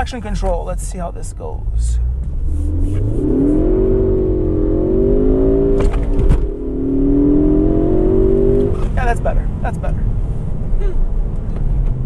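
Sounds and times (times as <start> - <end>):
car engine and tyre rumble: 0.0 - 12.0.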